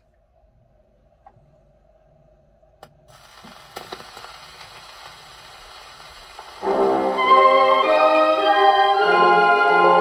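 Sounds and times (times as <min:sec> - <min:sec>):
record surface hiss: 0:00.0 - 0:10.0
record crackles: 0:03.1 - 0:06.7.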